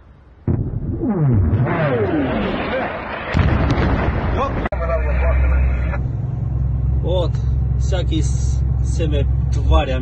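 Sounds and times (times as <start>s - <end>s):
vehicle engine drone: 0.1s - 10.0s
voices: 4.3s - 6.2s.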